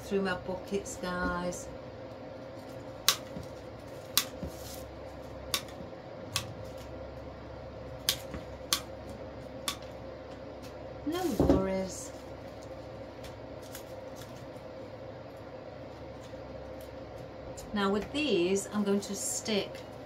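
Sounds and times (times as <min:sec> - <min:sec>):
faint steady hum: 0:00.0 - 0:20.0
cutters snipping wire stems: 0:03.0 - 0:03.3.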